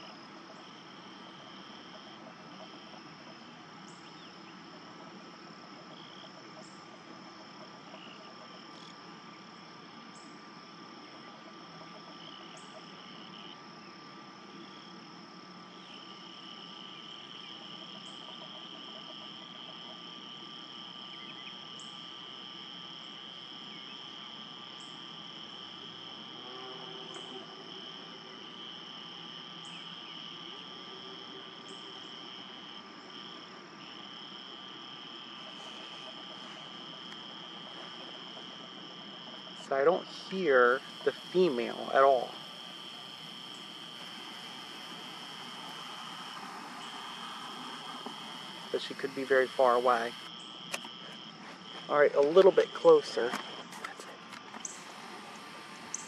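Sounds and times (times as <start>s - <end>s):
chorus of calling insects or frogs: 0.0s - 56.0s.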